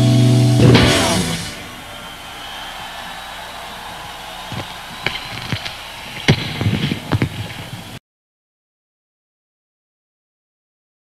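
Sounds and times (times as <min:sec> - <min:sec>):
rock band final chord: 0:00.0 - 0:01.9
cymbal crash: 0:00.0 - 0:02.2
sharp hits: 0:00.0 - 0:02.6
crowd noise: 0:00.0 - 0:08.0.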